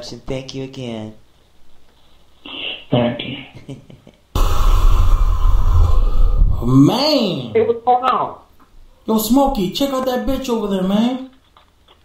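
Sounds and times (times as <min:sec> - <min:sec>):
loud bass-heavy noise: 0:04.4 - 0:07.1.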